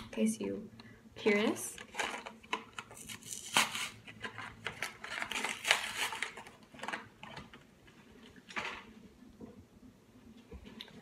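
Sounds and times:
plastic packaging crinkling: 1.7 - 8.9.

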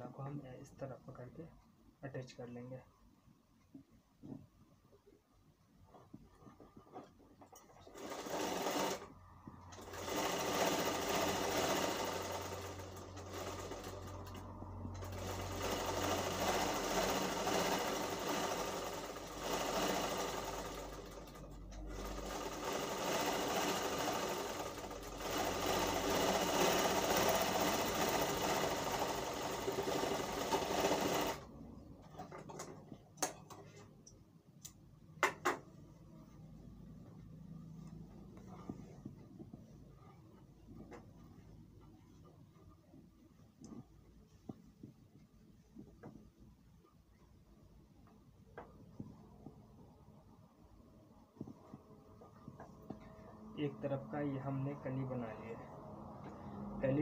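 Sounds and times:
sewing machine running: 7.8 - 9.1, 9.7 - 31.5.

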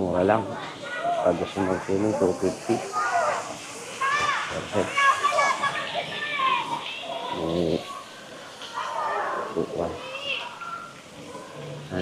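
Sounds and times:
children calling and shrieking: 0.0 - 12.0.

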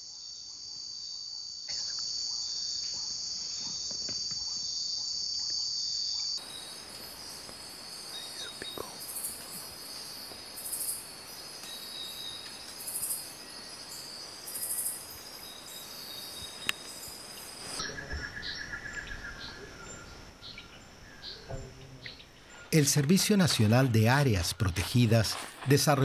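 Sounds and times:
insects buzzing: 0.0 - 26.0
pulsing insect call: 0.0 - 26.0
birds chirping: 6.2 - 26.0.

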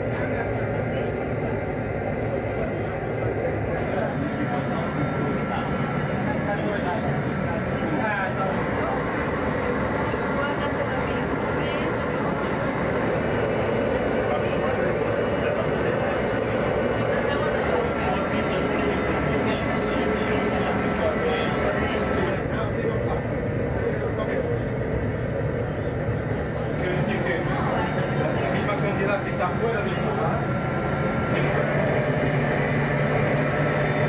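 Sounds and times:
gas burner roaring: 0.0 - 34.0
people talking: 0.0 - 34.0.

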